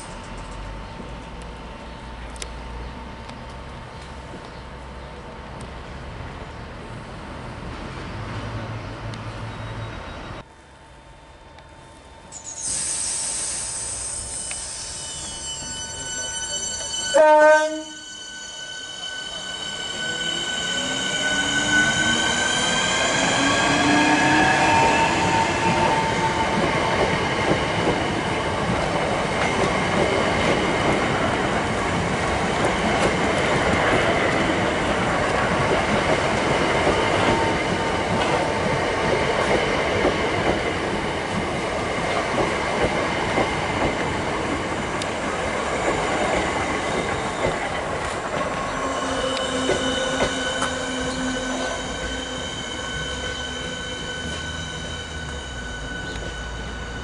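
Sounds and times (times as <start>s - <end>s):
approaching train electric whine: 0.0s - 57.0s
wheels rushing on rail: 0.0s - 57.0s
electric train motor whine: 10.5s - 29.0s.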